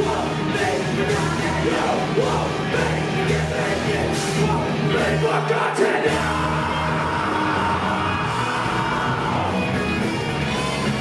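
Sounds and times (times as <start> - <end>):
drums: 0.0 - 11.0
electric guitar: 0.0 - 11.0.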